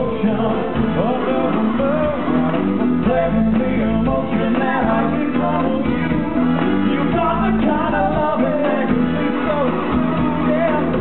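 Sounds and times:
loud rock music: 0.0s - 11.0s.

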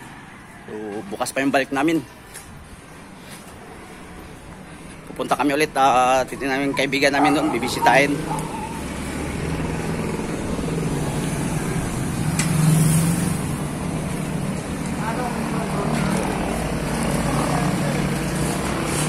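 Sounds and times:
vehicle engine running: 8.2s - 19.0s.

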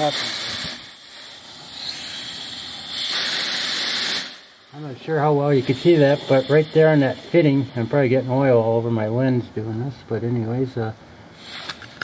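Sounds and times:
compressed air hissing: 0.0s - 8.7s, 11.3s - 12.0s.

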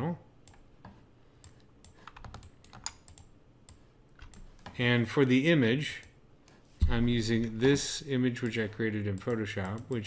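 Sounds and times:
keyboard and mouse clicking: 0.5s - 4.7s, 8.4s - 10.0s.

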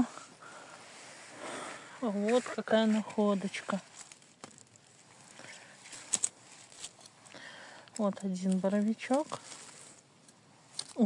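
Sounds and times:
dry leaves rustling: 0.5s - 7.3s, 8.3s - 10.1s.

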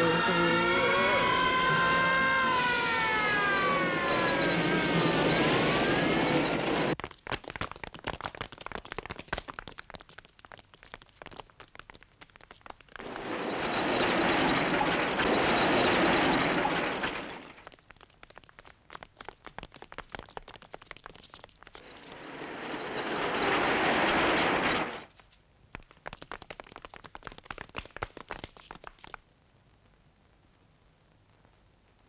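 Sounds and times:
broad rush of noise: 0.0s - 7.0s, 13.0s - 17.6s, 21.8s - 25.1s
siren wailing: 0.0s - 7.0s
sharp cracks and knocks: 7.0s - 21.9s, 23.6s - 29.2s.

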